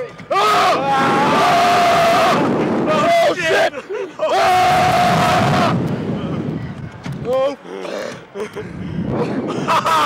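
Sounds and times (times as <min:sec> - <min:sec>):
wind rushing across microphone: 0:00.0 - 0:03.8, 0:04.5 - 0:07.4, 0:08.5 - 0:10.0.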